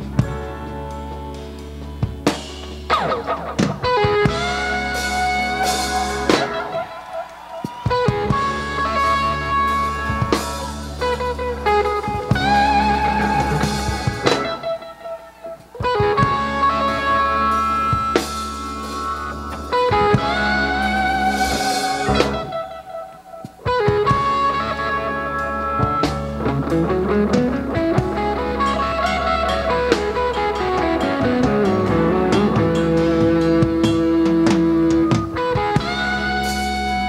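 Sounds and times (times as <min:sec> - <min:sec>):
bass: 0:00.0 - 0:23.0, 0:23.6 - 0:37.0
drums: 0:00.0 - 0:37.0
electric guitar bending notes: 0:00.0 - 0:37.0.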